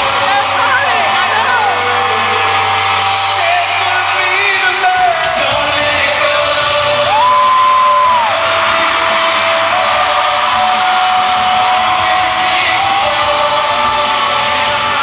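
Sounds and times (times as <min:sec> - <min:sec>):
fans shouting and whooping: 0:00.0 - 0:15.0
live pop music: 0:00.0 - 0:15.0.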